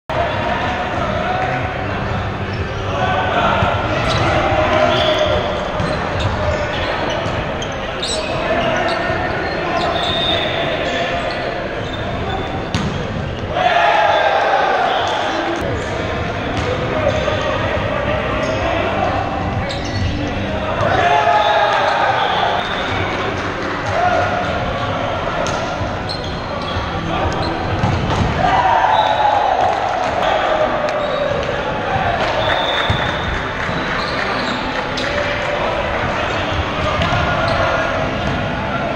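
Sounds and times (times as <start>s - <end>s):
players shouting: 0.1s - 38.9s.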